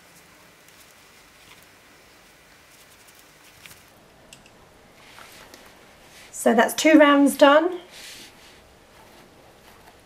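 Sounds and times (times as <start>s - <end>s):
yarn and cloth doll rustling: 4.9s - 6.4s, 7.9s - 10.0s.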